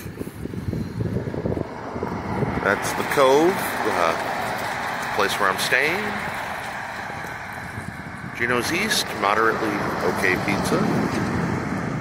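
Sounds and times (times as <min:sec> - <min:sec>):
wind buffeting microphone: 0:00.0 - 0:12.0
car passing by: 0:00.6 - 0:12.0.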